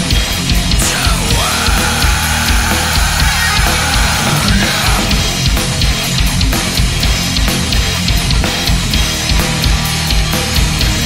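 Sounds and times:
nu metal song: 0:00.0 - 0:11.0.

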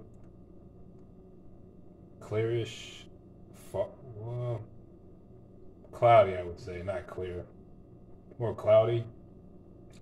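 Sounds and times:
low hum: 0:00.0 - 0:10.0.

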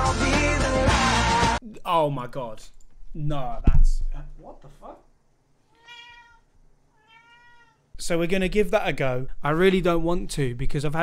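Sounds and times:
cat meowing faintly: 0:05.7 - 0:07.9.

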